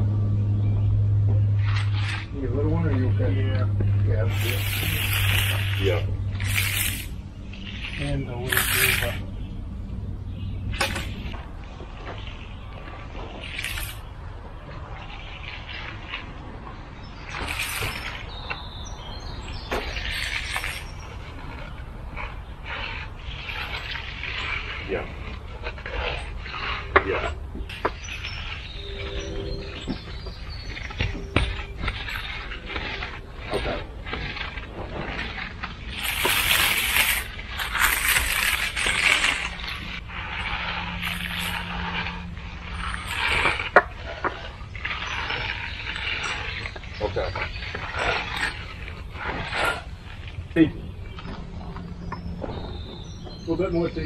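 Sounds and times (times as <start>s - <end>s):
steel tools scraping concrete: 1.6s - 9.3s, 10.7s - 54.0s.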